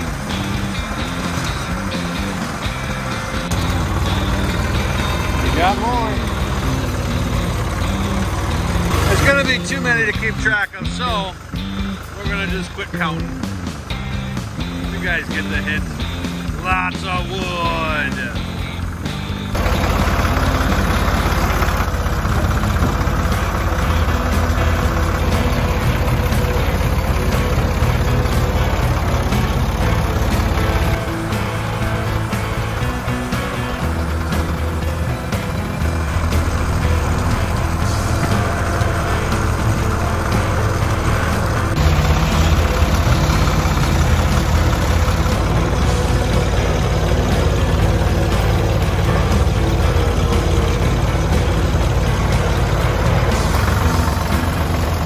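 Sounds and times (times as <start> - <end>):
background music: 0.0 - 55.0
tractor engine running: 0.0 - 55.0.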